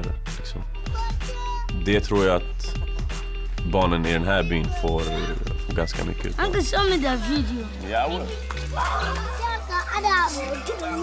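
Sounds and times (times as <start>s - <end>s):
background music low sustained notes: 0.0s - 11.0s
children chattering: 6.5s - 11.0s.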